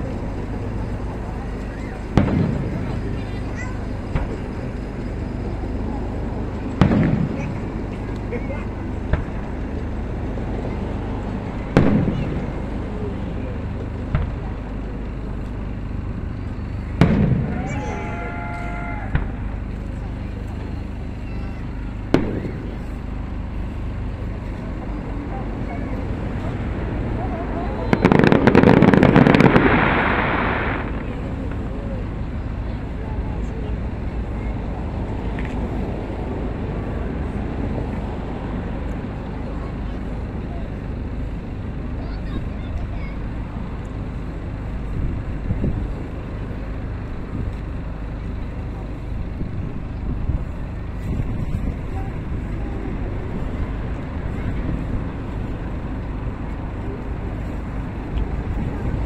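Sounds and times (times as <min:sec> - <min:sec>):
firework shell bursting: 0:27.9 - 0:31.7.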